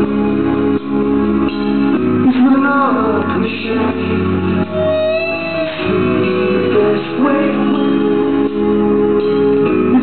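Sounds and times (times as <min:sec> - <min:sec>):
electric guitar: 0:00.0 - 0:10.0
muffled live rock band: 0:00.0 - 0:10.0.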